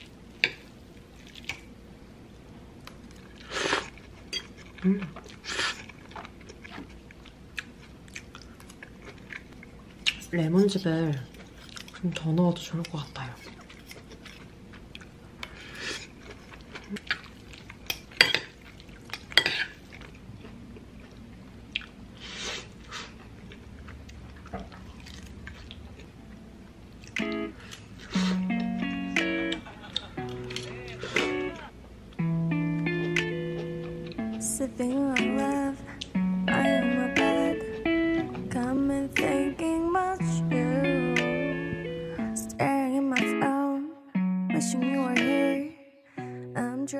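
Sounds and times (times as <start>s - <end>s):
background guitar music: 26.2s - 46.9s.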